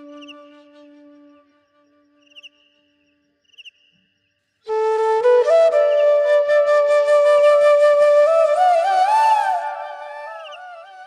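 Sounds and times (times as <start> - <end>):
flute music: 0.0 - 2.1, 4.7 - 11.0
faint cricket chirping: 0.0 - 4.8.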